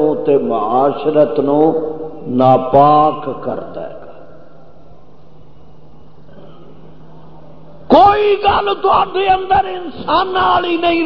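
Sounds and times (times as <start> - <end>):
man preaching: 0.0 - 4.3, 7.9 - 11.0
low hum and hiss: 0.0 - 11.0.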